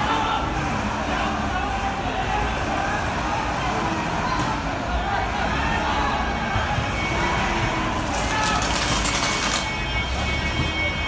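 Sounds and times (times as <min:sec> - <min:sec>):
bus engine running: 0:00.0 - 0:11.0
crowd voices: 0:00.0 - 0:11.0.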